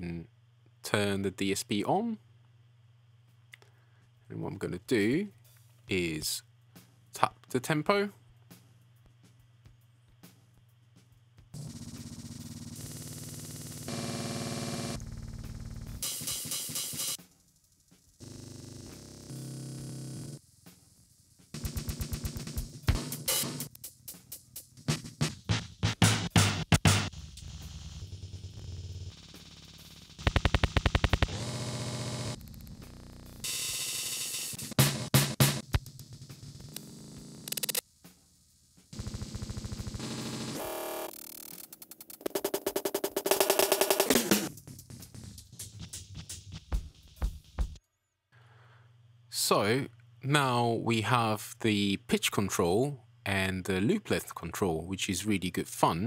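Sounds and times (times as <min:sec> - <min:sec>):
looped percussive music stuttering: 0:26.7 - 0:31.4.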